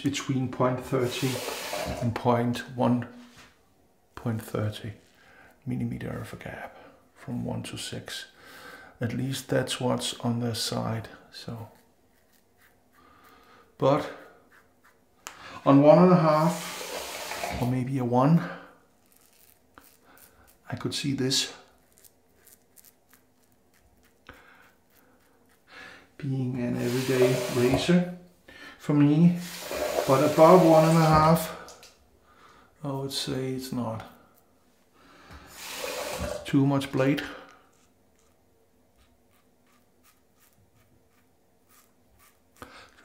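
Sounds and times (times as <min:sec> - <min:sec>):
razor scraping stubble: 0:11.7 - 0:13.0, 0:21.7 - 0:25.7, 0:39.0 - 0:42.7.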